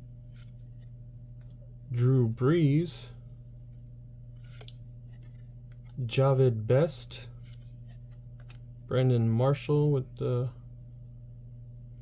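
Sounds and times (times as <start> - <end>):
steady low hum: 0.0 - 12.0
trading cards rustling and clicking: 0.2 - 1.6, 3.7 - 6.3, 7.3 - 9.3.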